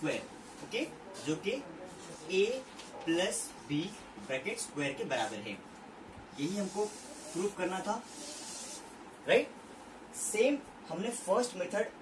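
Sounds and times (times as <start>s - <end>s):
chalk scraping on blackboard: 6.4s - 8.9s.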